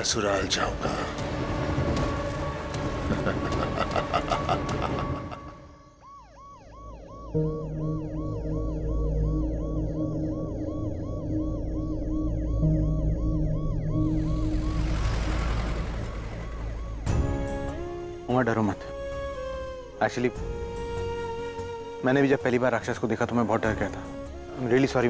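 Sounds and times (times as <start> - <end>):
low music drone: 0.0 - 5.9, 6.8 - 22.0
ambulance siren yelping: 0.0 - 19.9.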